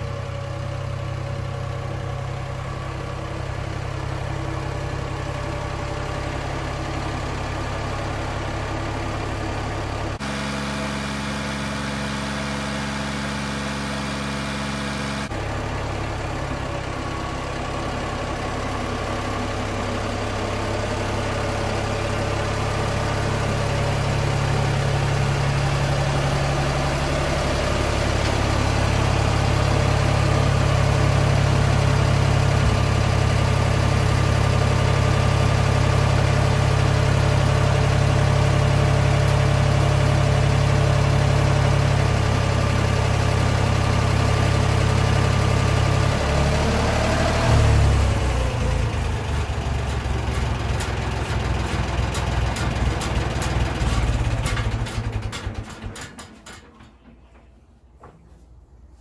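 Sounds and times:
tractor engine running: 0.0 - 58.3.

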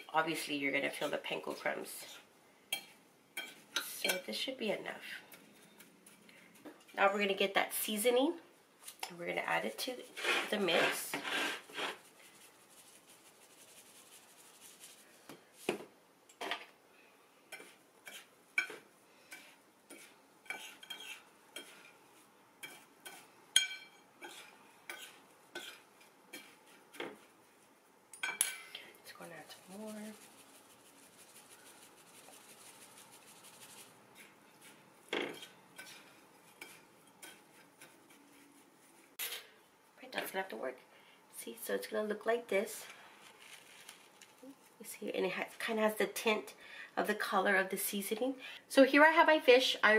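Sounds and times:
fork clinking and scraping a bowl: 2.7 - 4.2, 17.5 - 22.0, 22.6 - 27.2, 33.4 - 38.4.

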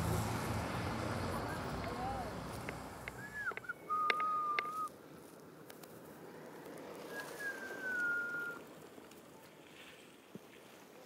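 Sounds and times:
faint outdoor background noise: 0.0 - 11.0
bird whistled calls: 3.2 - 4.9, 7.1 - 8.6.

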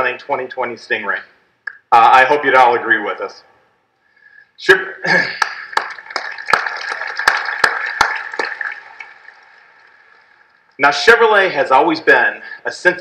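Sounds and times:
audience applauding: 5.4 - 10.8.

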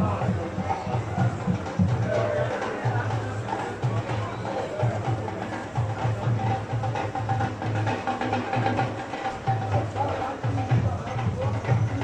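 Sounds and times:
drums steady beat: 0.0 - 12.0
parade band music: 0.0 - 12.0.

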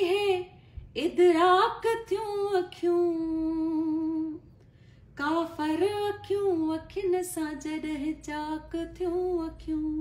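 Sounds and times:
woman singing unaccompanied: 0.0 - 4.4, 5.2 - 10.0.

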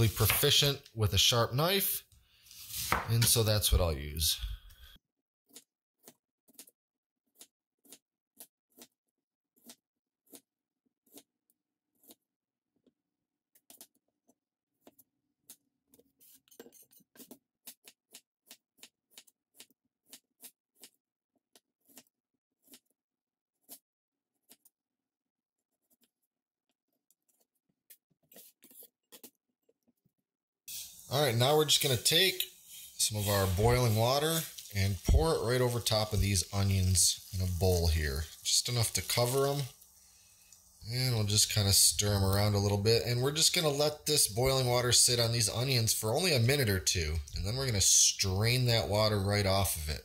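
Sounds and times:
knife slicing onion on cutting board: 0.0 - 0.6, 2.5 - 3.4
knife slicing on plastic board: 2.5 - 3.4, 21.8 - 22.9.

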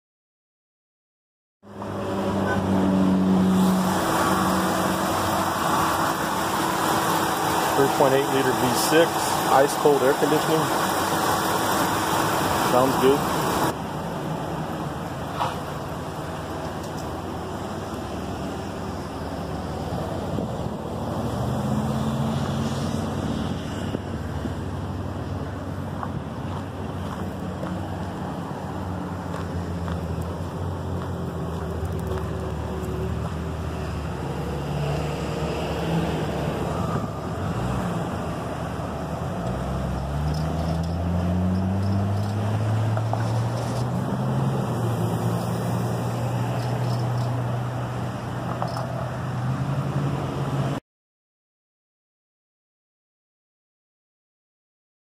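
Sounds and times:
minivan engine running: 1.6 - 50.8.

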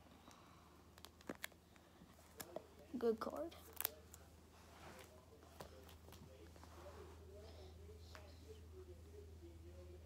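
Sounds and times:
plastic sleeves clicking and rustling: 1.0 - 1.6.

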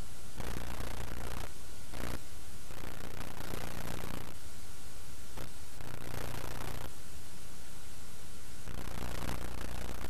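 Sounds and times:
static hiss: 0.0 - 10.0.

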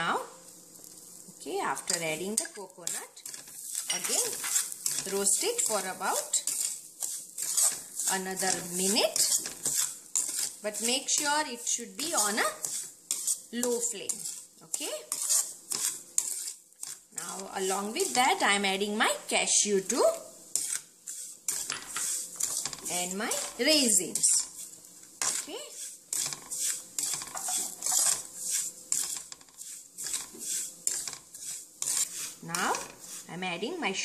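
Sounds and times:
spatula scraping a pan: 0.3 - 34.0.

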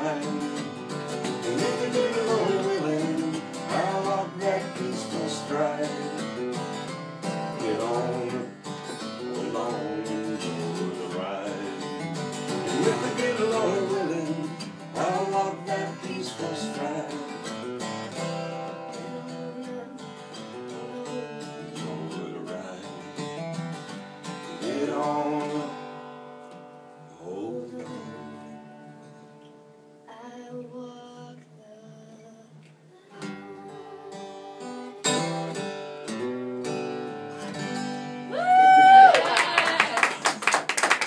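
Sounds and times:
people singing: 0.0 - 6.6, 7.5 - 17.6, 18.7 - 23.1, 24.4 - 25.9, 27.1 - 28.6, 33.0 - 35.7
acoustic guitar strumming: 0.0 - 30.1, 30.7 - 38.4.

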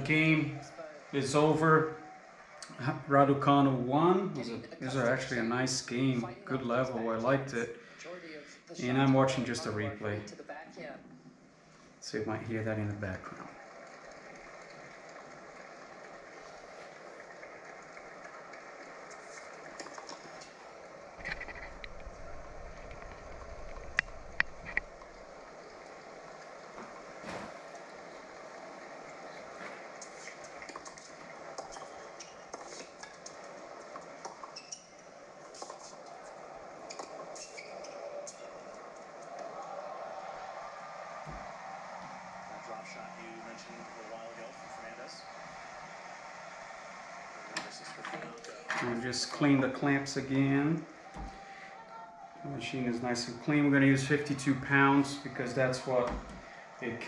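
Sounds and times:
faint television commentary: 0.0 - 57.0.

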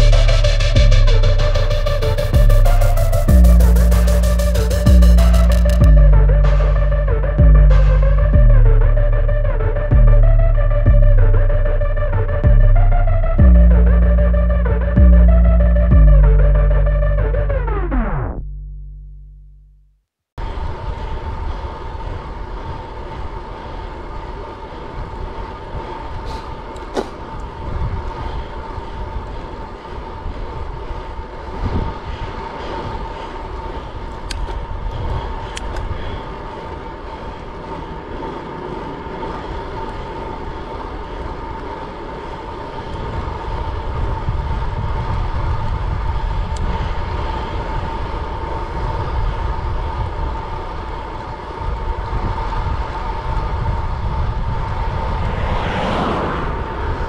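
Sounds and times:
bicycle tyre hum on road: 0.0 - 18.3, 20.4 - 57.0
steady high whine: 0.0 - 57.0
wind rushing over microphone: 20.4 - 57.0.

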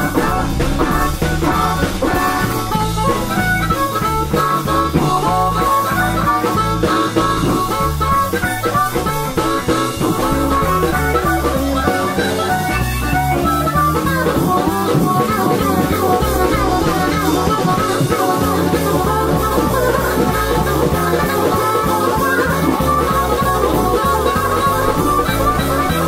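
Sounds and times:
blues band playing: 0.0 - 26.0
lead guitar bending notes: 0.0 - 26.0.

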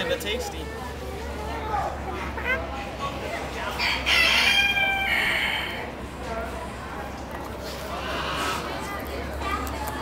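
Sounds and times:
rooster crowing: 3.8 - 5.8.

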